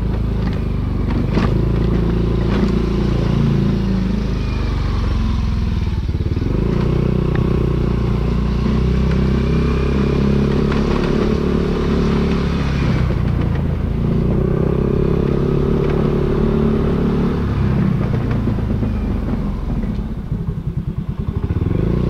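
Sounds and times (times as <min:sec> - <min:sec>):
motorcycle engine running: 0:00.0 - 0:22.0
wind and road noise: 0:00.0 - 0:22.0.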